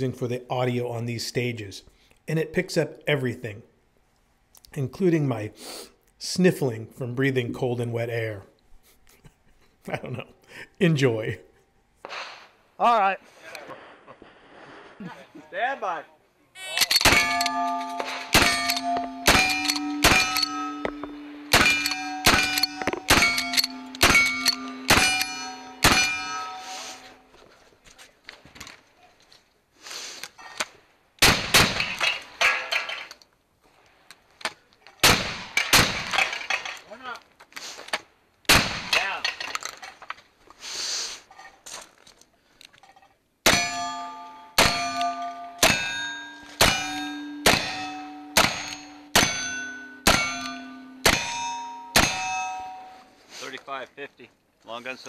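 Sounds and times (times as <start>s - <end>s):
rifle shots: 17.0s - 26.3s, 31.2s - 32.2s, 35.0s - 36.3s, 38.5s - 39.0s, 46.6s - 51.4s
steel target ringing: 17.0s - 27.3s, 43.5s - 53.1s
shotgun blasts: 18.1s - 20.4s, 21.5s - 26.2s, 31.2s - 32.1s, 35.0s - 36.2s, 38.5s - 39.1s.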